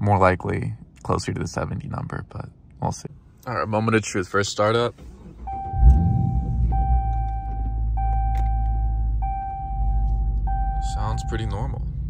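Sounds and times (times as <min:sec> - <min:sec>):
car engine cranking and idling: 0:02.6 - 0:12.0.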